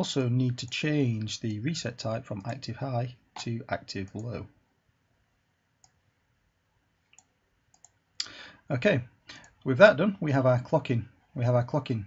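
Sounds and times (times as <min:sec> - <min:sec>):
faint computer mouse click: 0:07.1 - 0:08.3.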